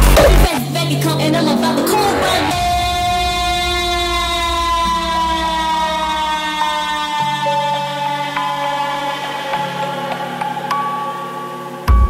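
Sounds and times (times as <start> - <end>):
low bass rumble: 0.0 - 0.5
synth chord drifting down: 1.5 - 11.8.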